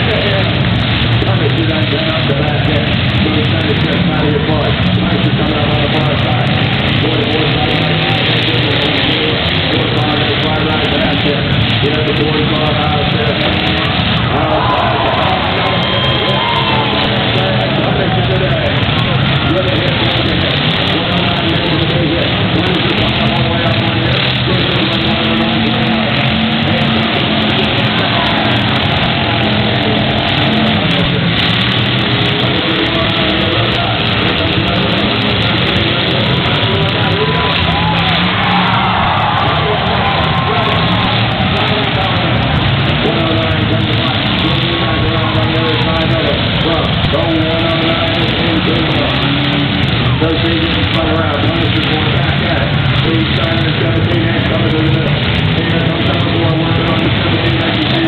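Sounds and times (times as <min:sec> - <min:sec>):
announcer over loudspeakers: 0:00.0 - 0:58.0
car engines running: 0:00.0 - 0:58.0.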